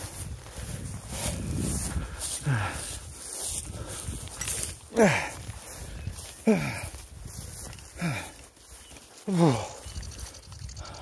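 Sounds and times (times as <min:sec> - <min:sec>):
footsteps through long grass: 0:00.0 - 0:11.0.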